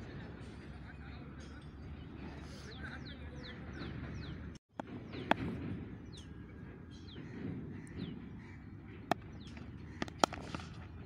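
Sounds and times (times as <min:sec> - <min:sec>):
outdoor background noise: 0:00.0 - 0:11.0
cricket bat striking ball: 0:09.0 - 0:11.0.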